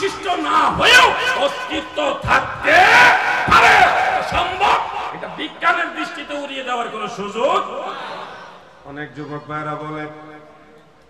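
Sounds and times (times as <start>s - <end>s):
man preaching over loudspeaker: 0.0s - 7.9s, 8.9s - 10.5s.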